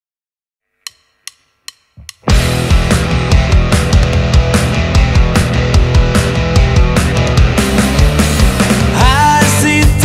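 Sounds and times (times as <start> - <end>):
drumsticks clicking together: 0.9 - 2.3.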